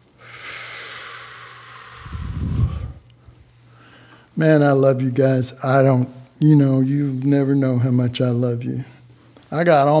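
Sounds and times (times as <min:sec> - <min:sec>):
breath buffeting microphone: 0:00.2 - 0:04.3
man breathing out: 0:00.2 - 0:04.3.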